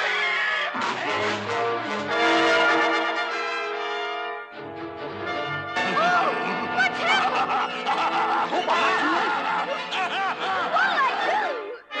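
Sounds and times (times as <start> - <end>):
orchestral film score: 0.2 - 12.0
cartoon character laughing: 5.9 - 11.5.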